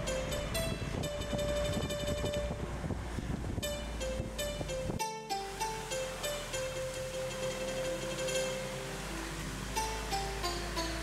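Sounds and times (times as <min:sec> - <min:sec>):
plucked melody: 0:00.0 - 0:11.0
steady low rumble: 0:00.0 - 0:11.0.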